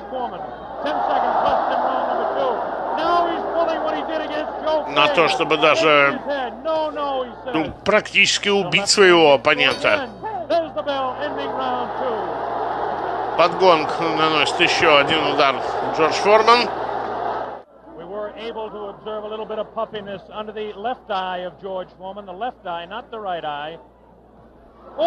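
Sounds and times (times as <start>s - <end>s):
man speaking commentary: 0.0s - 12.3s, 13.4s - 16.7s, 18.0s - 23.8s
crowd noise: 0.0s - 25.0s.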